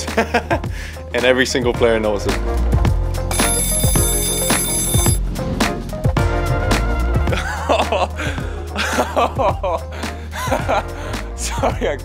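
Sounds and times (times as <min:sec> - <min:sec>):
background music with steady beat: 0:00.0 - 0:12.0
alarm clock bell ringing: 0:03.3 - 0:05.2.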